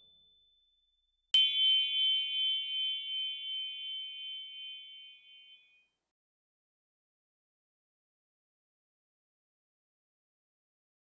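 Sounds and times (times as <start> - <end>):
bright bell-like ding: 1.4 - 5.8.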